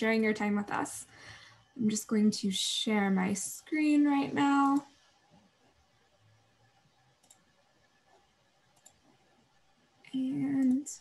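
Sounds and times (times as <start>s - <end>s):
computer mouse clicks: 6.9s - 9.6s.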